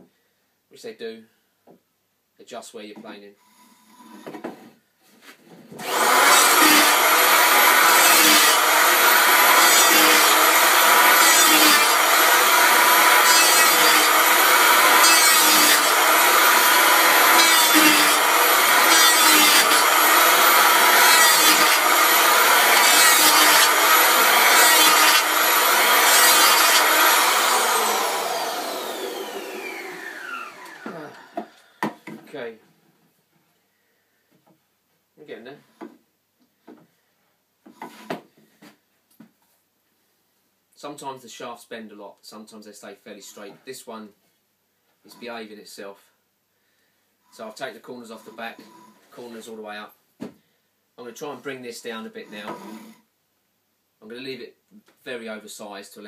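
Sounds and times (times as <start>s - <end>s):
electric hand planer cutting wood: 5.8s - 32.0s, 52.3s - 53.0s
motor winding down whine: 26.8s - 31.4s.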